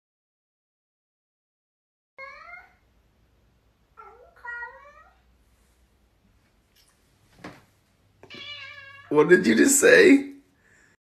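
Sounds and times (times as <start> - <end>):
cat meowing: 2.2 - 2.8, 4.0 - 5.2, 8.2 - 9.2.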